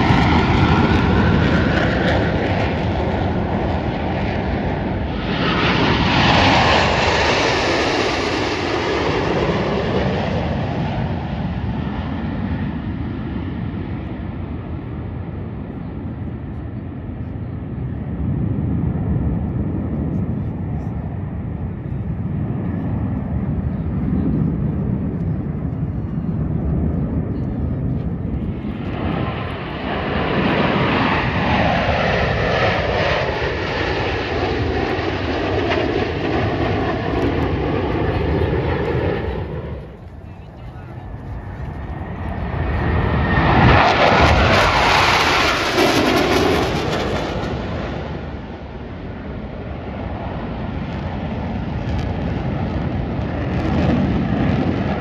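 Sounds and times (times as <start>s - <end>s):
jets flying past: 0.0s - 55.0s.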